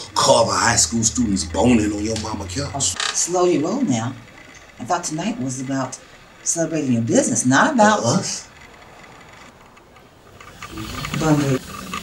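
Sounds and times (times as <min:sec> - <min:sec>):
low steady hum: 0:00.0 - 0:08.5.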